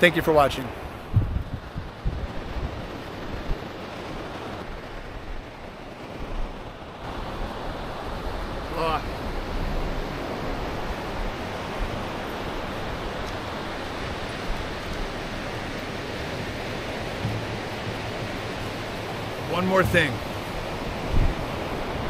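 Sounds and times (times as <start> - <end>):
ocean surf breaking on beach: 0.0 - 22.0.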